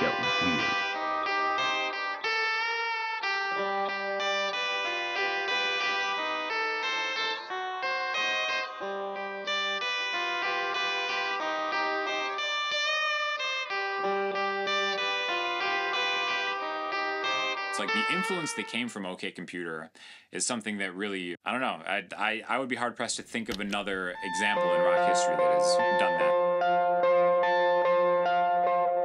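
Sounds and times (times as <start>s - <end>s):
electric guitar riff: 0.0s - 18.9s, 23.7s - 29.0s.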